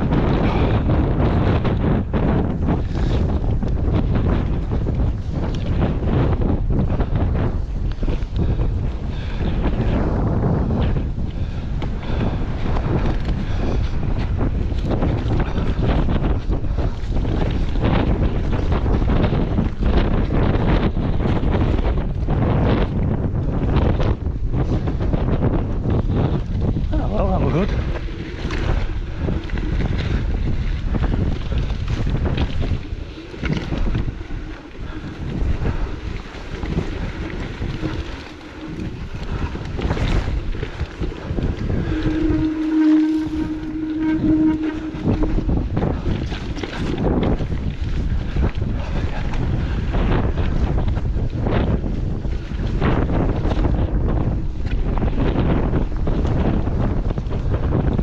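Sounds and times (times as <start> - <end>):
wind buffeting microphone: 0.0 - 58.0
steady tone: 33.0 - 47.0.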